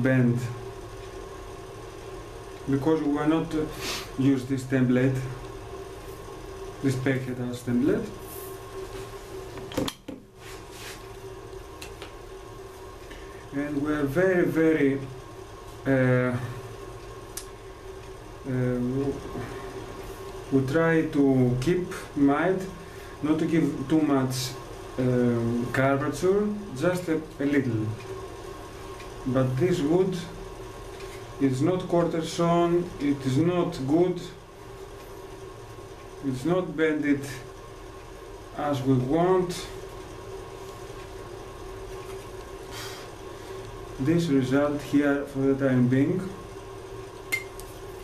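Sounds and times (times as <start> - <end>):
faint steady hum: 0.0 - 48.0
man saying uh: 15.9 - 16.6, 20.6 - 28.0.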